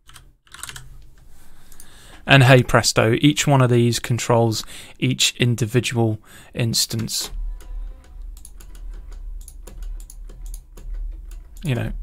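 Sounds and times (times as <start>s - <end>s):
keyboard and mouse clicking: 0.0s - 0.9s, 6.9s - 11.9s
steady low hum: 7.2s - 12.0s.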